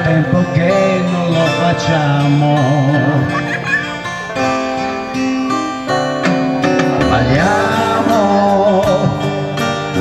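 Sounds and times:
electronic keyboard chords: 0.0s - 10.0s
strummed acoustic guitar: 0.0s - 10.0s.

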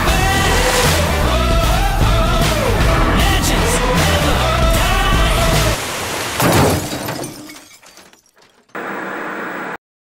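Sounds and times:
glass shattering: 6.4s - 8.8s
tv static hiss: 8.8s - 9.8s.

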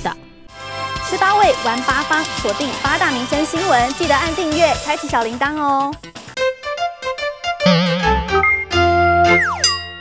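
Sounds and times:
tone sliding down in pitch: 7.6s - 9.8s
electronic logo jingle: 7.6s - 10.0s.

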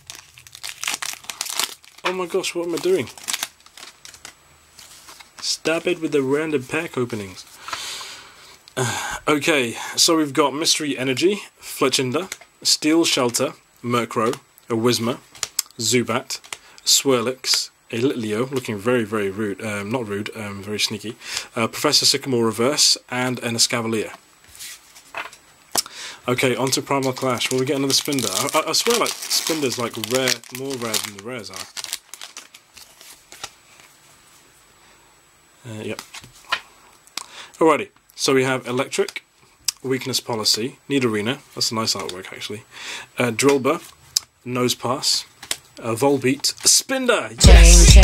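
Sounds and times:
foil wrapper crinkling and tearing: 0.0s - 5.6s, 26.3s - 33.9s
cards rustling: 0.0s - 6.0s, 26.4s - 34.0s.

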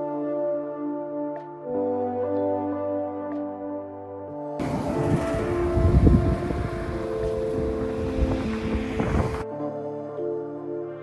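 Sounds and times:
music with sustained notes: 0.0s - 11.0s
wind on microphone: 4.6s - 9.4s.

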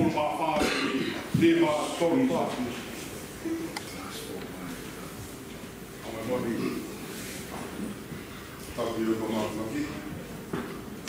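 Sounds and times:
man speaking: 0.0s - 2.9s, 6.0s - 7.2s, 8.7s - 10.1s.

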